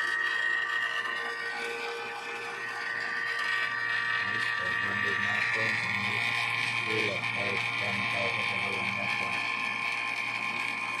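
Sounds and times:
vacuum pump whining: 0.0s - 11.0s.

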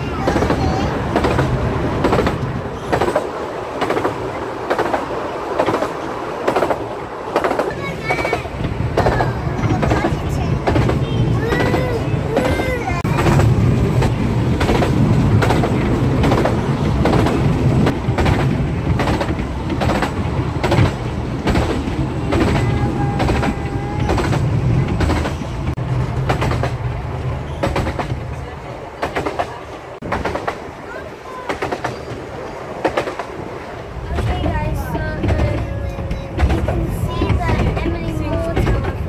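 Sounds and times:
train carriage rumble: 0.0s - 39.0s
wheels clicking over rail joints: 0.0s - 39.0s.

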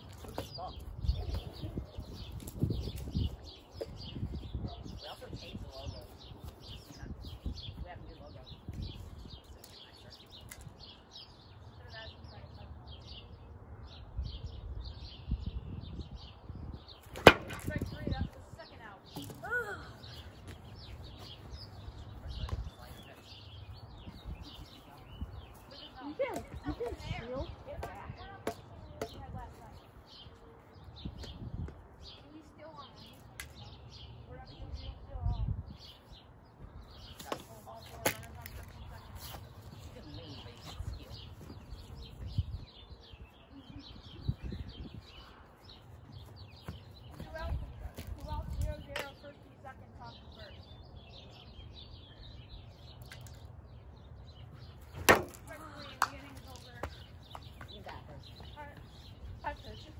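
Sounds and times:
wind rumbling on microphone: 0.0s - 52.8s
birds chirping: 0.0s - 59.9s.

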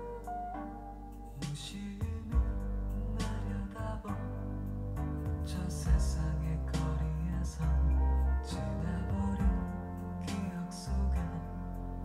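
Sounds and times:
guitar: 0.0s - 12.0s
sustained bass notes: 0.0s - 12.0s.

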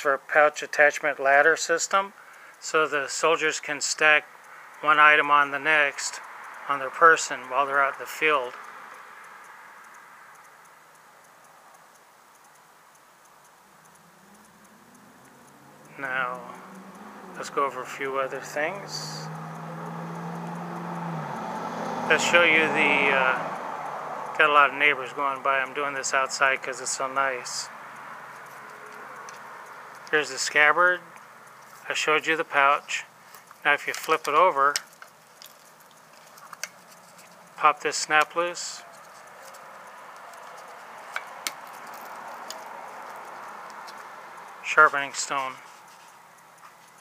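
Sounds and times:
car driving past: 13.8s - 25.5s, 26.2s - 31.9s, 38.4s - 46.6s.

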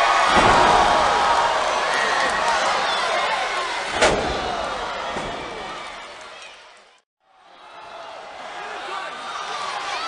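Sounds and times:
arena crowd shouting: 0.0s - 10.0s.

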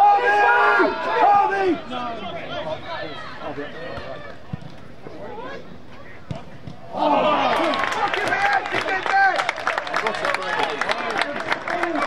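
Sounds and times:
distant players shouting: 0.0s - 11.2s.

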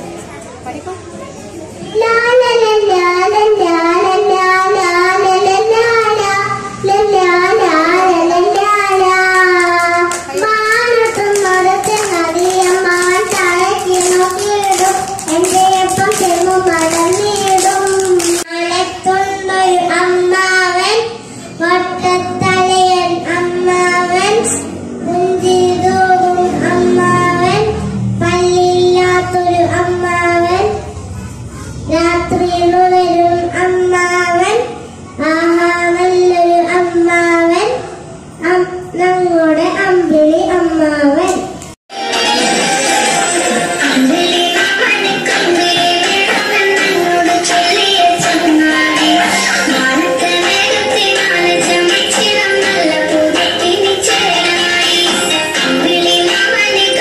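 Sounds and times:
girl singing into microphone: 1.8s - 41.6s, 43.8s - 57.0s.

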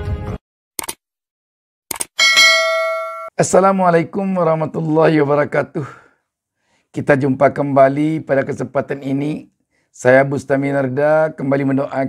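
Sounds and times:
notification bell ding: 2.2s - 3.4s.

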